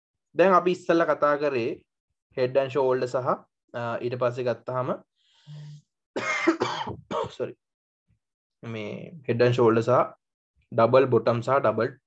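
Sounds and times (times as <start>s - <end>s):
man coughing harshly: 6.2s - 7.5s.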